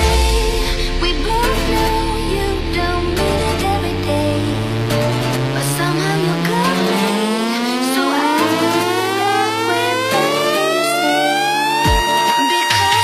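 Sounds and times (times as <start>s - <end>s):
synthesizer riser: 0.0s - 12.4s
held synth tones: 0.0s - 12.8s.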